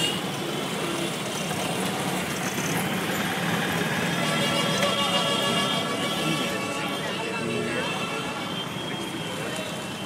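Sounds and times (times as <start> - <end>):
street traffic noise: 0.0 - 10.0
voices: 4.3 - 10.0.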